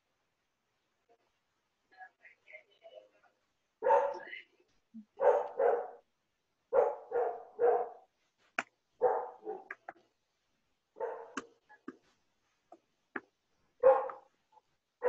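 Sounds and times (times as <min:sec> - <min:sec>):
dog barking: 0:03.8 - 0:04.3, 0:05.2 - 0:06.0, 0:06.7 - 0:08.1, 0:09.0 - 0:09.8, 0:11.0 - 0:11.4, 0:13.8 - 0:14.3.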